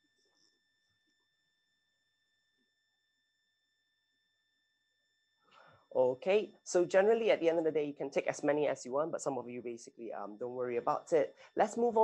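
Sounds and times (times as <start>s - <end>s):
faint high-pitched electronic tone: 0.0s - 12.0s.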